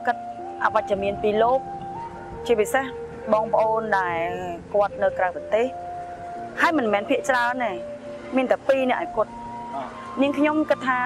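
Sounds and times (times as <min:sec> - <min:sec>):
soft synthesizer music: 0:00.0 - 0:11.0.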